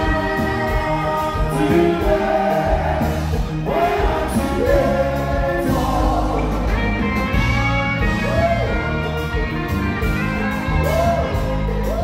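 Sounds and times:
person singing: 0.0s - 7.1s
live band music through loudspeakers: 0.0s - 12.0s.

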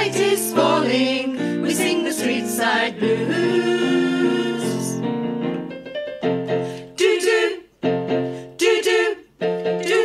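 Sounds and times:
women singing in close harmony: 0.0s - 5.0s, 6.8s - 7.7s, 8.5s - 10.0s.

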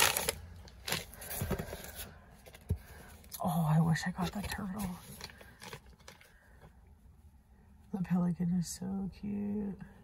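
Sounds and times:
cardboard and paper rustling: 0.0s - 6.4s.

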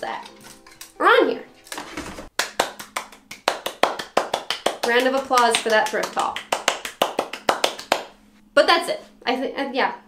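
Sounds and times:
person clapping hands: 2.3s - 8.2s.

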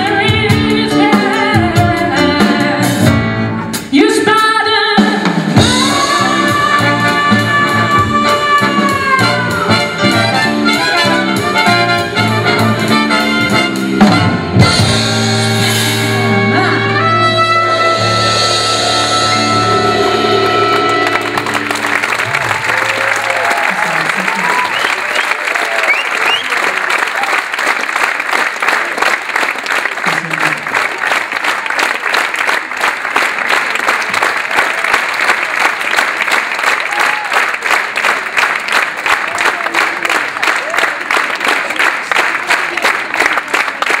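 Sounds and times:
band chord with brass: 5.6s - 22.7s
audience applauding: 19.6s - 44.0s.

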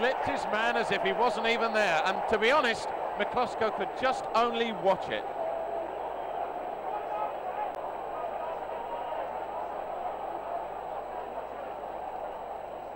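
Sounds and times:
stadium crowd cheering: 0.0s - 12.9s.

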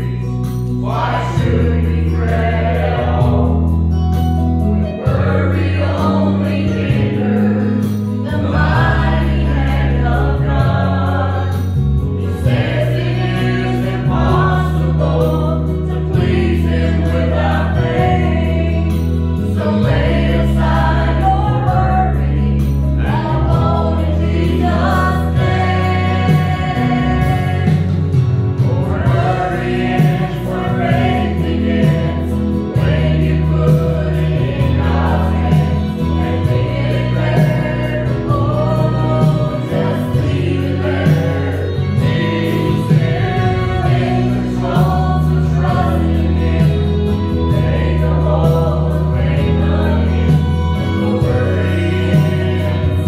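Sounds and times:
group singing gospel song: 0.0s - 53.0s
instrumental accompaniment with bass: 0.0s - 53.0s.

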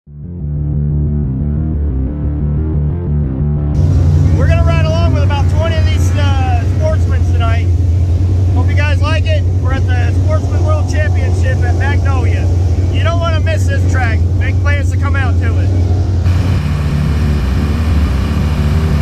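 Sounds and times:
intro music: 0.2s - 14.7s, 15.4s - 19.0s
race car engines droning: 3.7s - 19.0s
man talking: 4.2s - 7.7s, 8.5s - 15.8s.

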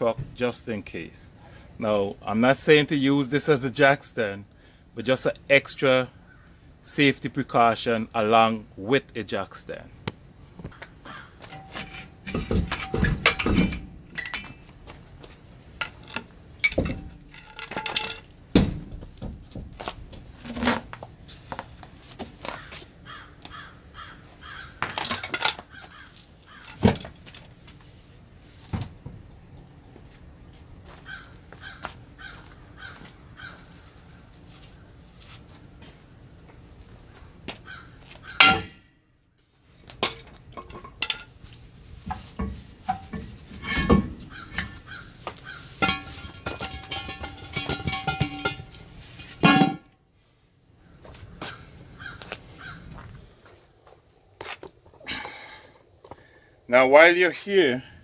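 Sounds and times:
crow-like caws: 10.7s - 11.5s, 22.5s - 26.8s, 31.0s - 34.2s, 37.6s - 38.5s, 44.3s - 45.7s, 51.4s - 53.1s
metal clanks and knocks: 11.4s - 14.7s, 15.8s - 20.8s, 26.5s - 27.5s, 38.4s - 38.9s, 40.0s - 41.4s, 42.0s - 50.0s.

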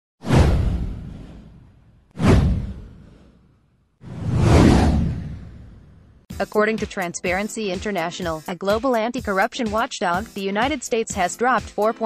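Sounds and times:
downward whoosh sound effect: 4.0s - 6.0s.

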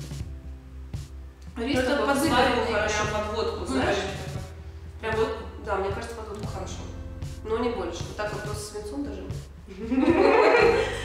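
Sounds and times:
person speaking: 1.6s - 11.0s.

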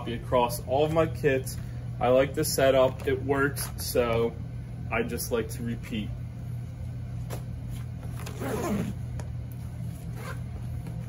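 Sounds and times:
steady low hum: 0.0s - 11.0s
backpack rasping scrape: 8.2s - 9.0s, 10.0s - 10.4s.

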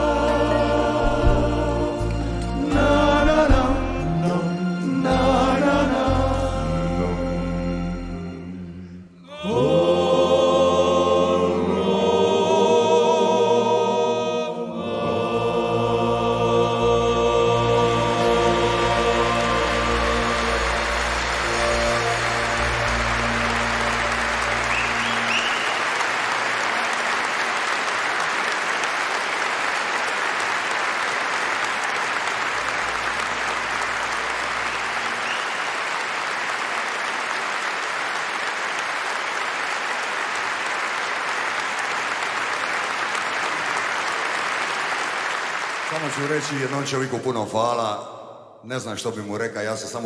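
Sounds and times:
band and vocal group held chord: 0.0s - 28.1s
audience applauding: 17.6s - 47.5s.

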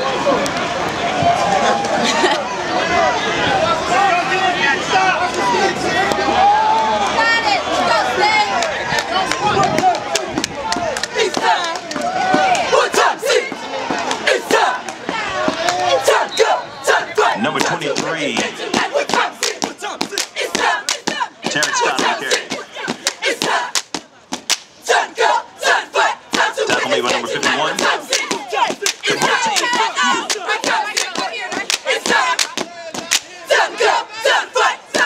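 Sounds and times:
cheer squad yelling and whooping: 0.9s - 23.8s, 24.8s - 35.0s
group chanting: 10.8s - 23.8s, 24.8s - 35.0s
hand claps: 27.1s - 33.3s.

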